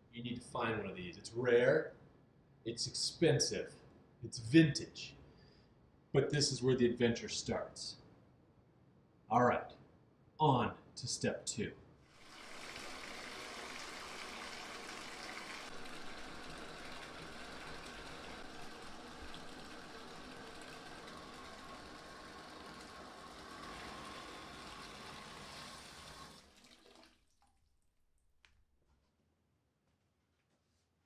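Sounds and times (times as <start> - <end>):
water pouring into bathtub: 12.1 - 28.0.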